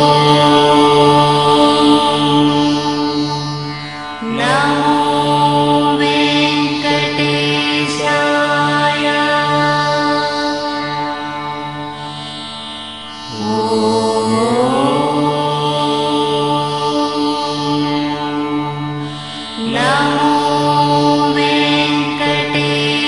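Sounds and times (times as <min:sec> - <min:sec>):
voice chanting: 0:00.0 - 0:11.9, 0:13.3 - 0:18.8, 0:19.6 - 0:23.0
steady drone: 0:00.0 - 0:23.0.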